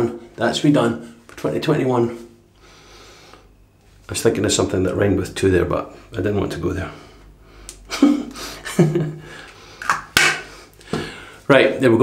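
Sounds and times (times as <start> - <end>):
man chuckling: 7.8 - 9.4.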